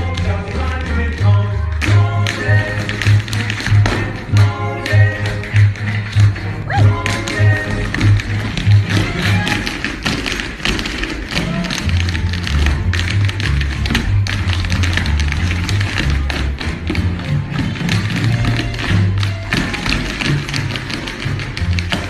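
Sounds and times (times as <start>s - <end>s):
music with bass line: 0.0s - 22.0s
tap shoes on wooden stage: 0.0s - 22.0s.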